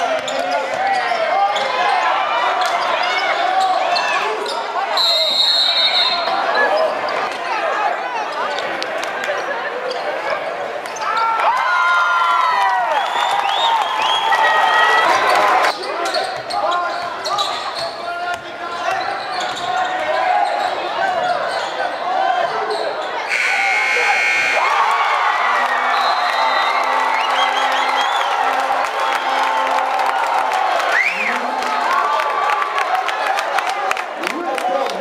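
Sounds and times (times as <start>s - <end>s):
crowd voices: 0.0s - 35.0s
referee's whistle blast: 5.0s - 6.4s, 23.3s - 24.9s, 25.7s - 28.4s
sneakers squeaking on hardwood: 19.0s - 21.6s.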